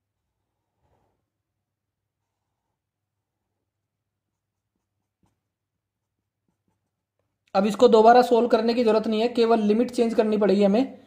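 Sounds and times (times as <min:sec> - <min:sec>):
pen strokes on paper: 0:02.0 - 0:07.2.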